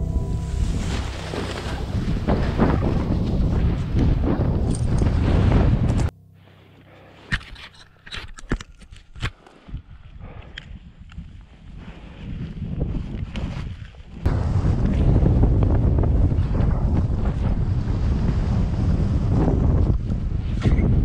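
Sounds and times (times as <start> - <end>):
wind buffeting microphone: 0.0 - 6.1, 9.6 - 21.0.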